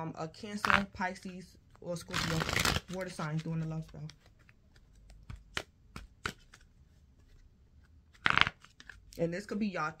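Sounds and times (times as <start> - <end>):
cards being shuffled: 0.4 - 9.6.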